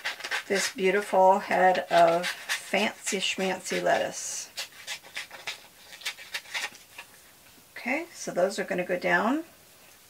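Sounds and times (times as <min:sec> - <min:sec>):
scissors snipping paper: 0:00.0 - 0:00.8.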